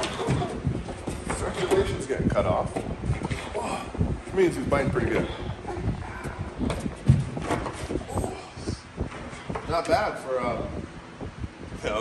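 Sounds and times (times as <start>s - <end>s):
scuffling and knocks: 0.0s - 3.6s.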